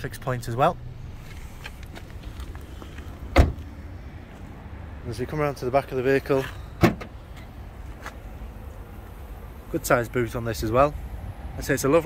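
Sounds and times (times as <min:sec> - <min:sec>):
car door shutting thump: 0:03.3 - 0:03.7, 0:06.8 - 0:07.2.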